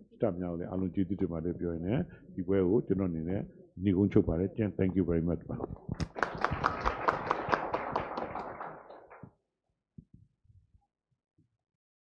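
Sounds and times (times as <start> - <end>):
audience clapping: 6.0 - 9.3.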